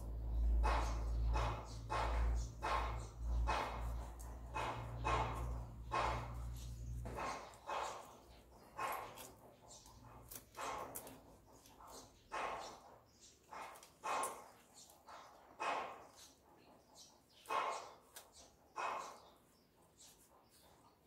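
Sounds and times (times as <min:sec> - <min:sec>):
dog barking: 0:00.6 - 0:09.3, 0:11.9 - 0:12.9, 0:13.5 - 0:16.2, 0:17.5 - 0:18.2, 0:18.8 - 0:19.3.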